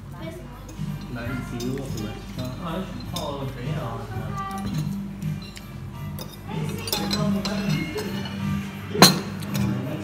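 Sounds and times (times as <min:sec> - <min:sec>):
music playing: 0:00.0 - 0:10.0
cutlery clinking on plate and glass: 0:00.7 - 0:03.6, 0:04.4 - 0:10.0.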